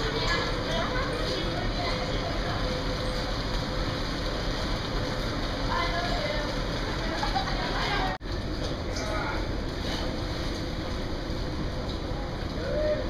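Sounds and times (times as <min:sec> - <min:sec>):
distant voices: 0:00.0 - 0:13.0.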